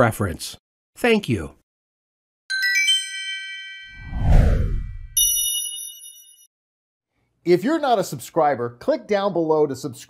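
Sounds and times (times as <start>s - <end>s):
high bell chord: 2.5s - 4.0s, 5.2s - 6.5s
bright chime notes: 2.5s - 4.2s, 5.1s - 6.5s
deep whoosh: 4.0s - 5.2s.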